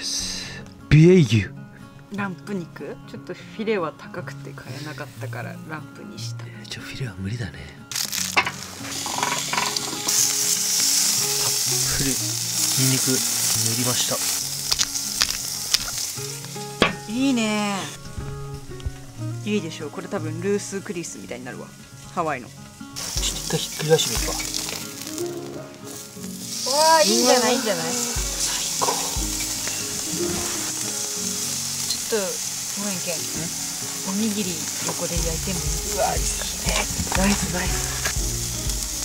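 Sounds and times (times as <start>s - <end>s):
background music: 0.0s - 39.0s
steak sizzling on a grill: 3.6s - 5.8s, 7.9s - 39.0s.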